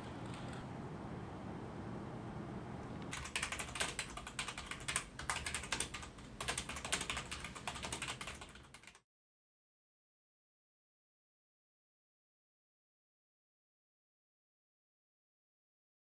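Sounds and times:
low room hum: 0:00.0 - 0:09.0
fast keyboard typing: 0:03.1 - 0:09.0.

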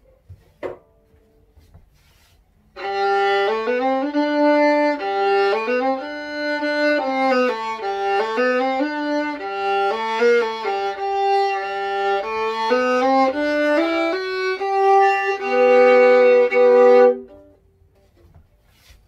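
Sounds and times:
solo violin melody: 0:02.7 - 0:17.6.

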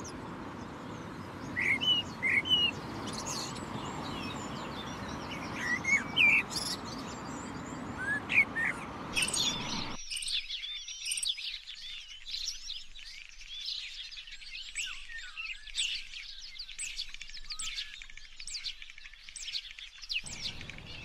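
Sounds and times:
songbirds chirping: 0:00.0 - 0:21.0.

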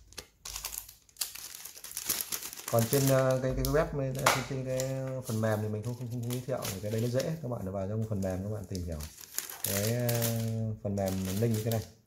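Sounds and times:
plastic bag and cards crinkling: 0:00.0 - 0:12.0.

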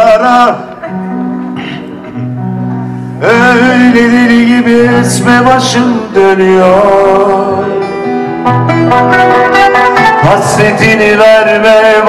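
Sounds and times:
acoustic guitar low notes: 0:00.0 - 0:12.0
person singing: 0:03.2 - 0:12.0.

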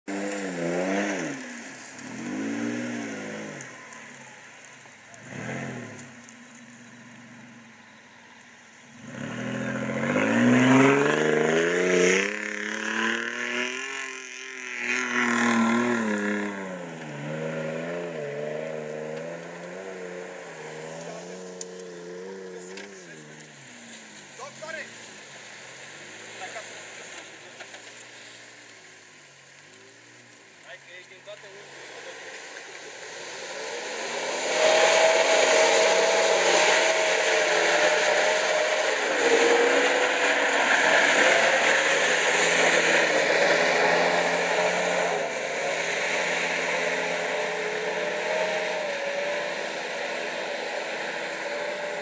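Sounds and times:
off-road engine revving under load: 0:00.0 - 0:03.8, 0:05.1 - 0:06.2, 0:08.9 - 0:24.9, 0:31.3 - 0:52.0.

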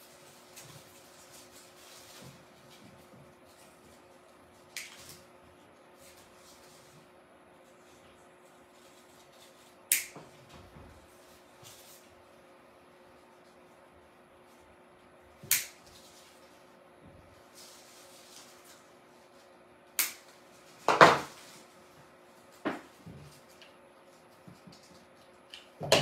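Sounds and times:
plastic leaves rustling: 0:00.0 - 0:05.2, 0:17.4 - 0:19.6, 0:20.2 - 0:23.6.

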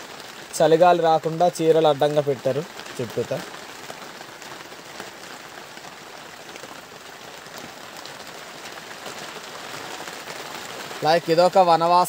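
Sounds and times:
steady rain hiss: 0:00.0 - 0:12.0.

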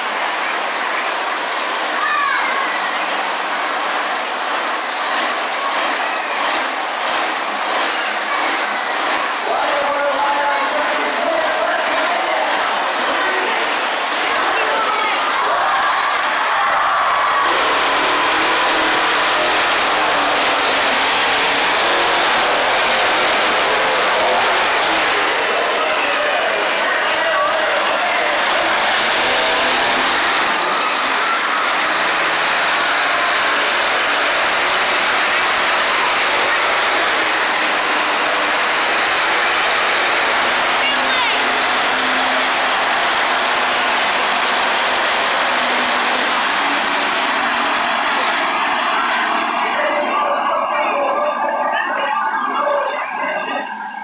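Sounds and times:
crowd voices: 0:00.0 - 0:54.0
monster truck engines running: 0:00.0 - 0:54.0.

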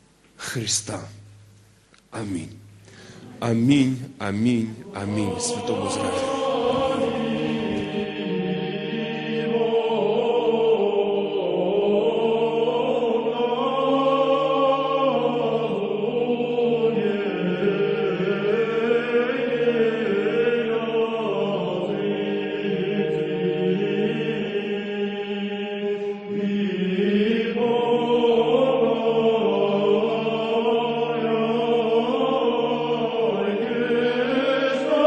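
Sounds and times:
group singing sacred song: 0:02.2 - 0:35.0.

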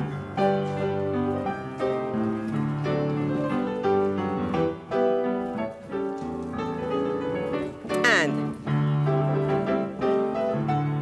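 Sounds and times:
piano accompaniment: 0:00.0 - 0:11.0
woman calling out: 0:08.0 - 0:08.4.

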